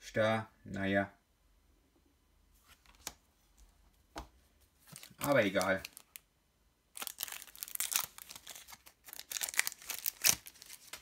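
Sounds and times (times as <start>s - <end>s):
foil pack tearing open: 7.0s - 11.0s.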